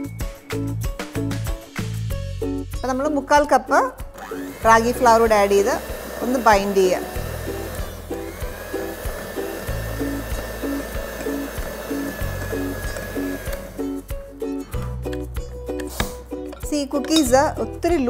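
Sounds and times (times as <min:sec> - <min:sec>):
background music with beat: 0:00.0 - 0:02.9, 0:07.9 - 0:18.0
electric hand mixer whining: 0:04.1 - 0:14.1.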